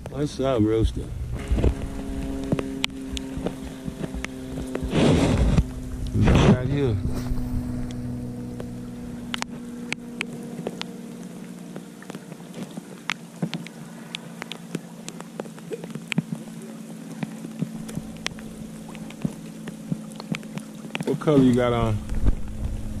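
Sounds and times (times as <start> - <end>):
raindrops ticking close by: 0.0 - 6.2, 7.8 - 23.0
steady low hum: 0.0 - 23.0
rain falling: 0.9 - 6.1, 7.9 - 23.0.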